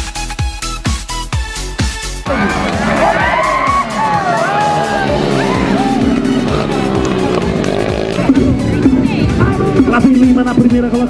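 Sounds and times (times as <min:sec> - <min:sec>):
background music with steady beat: 0:00.0 - 0:11.0
dirt-bike engines revving: 0:02.2 - 0:11.0.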